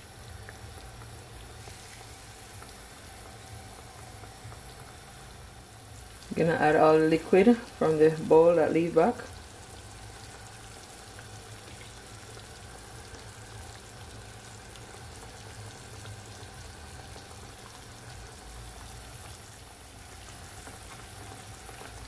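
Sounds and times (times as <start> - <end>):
sauce bubbling and sizzling in pan: 0.0 - 22.0.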